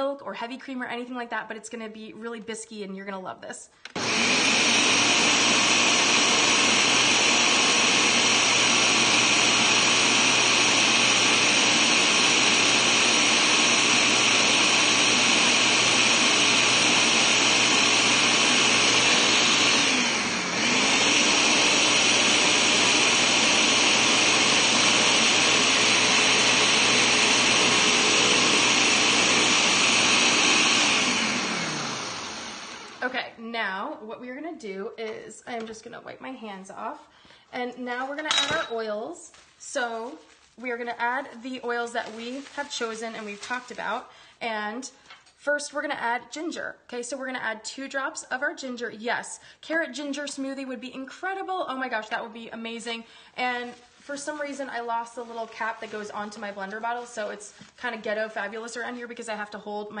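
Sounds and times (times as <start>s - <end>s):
blender running: 3.9s - 33.2s.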